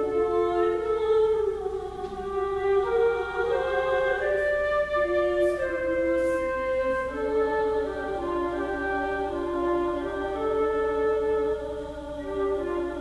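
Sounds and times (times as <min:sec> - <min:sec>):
choir singing: 0:00.0 - 0:13.0
flute playing held notes: 0:00.0 - 0:13.0.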